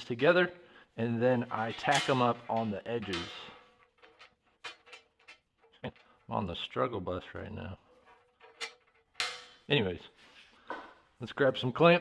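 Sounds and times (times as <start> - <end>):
steel bars clicking and knocking: 1.7 - 6.4, 7.9 - 9.6.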